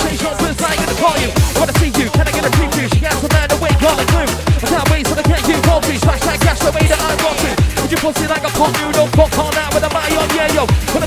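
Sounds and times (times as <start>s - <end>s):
hard dance music: 0.0s - 11.0s
pounding kick drum: 0.0s - 11.0s.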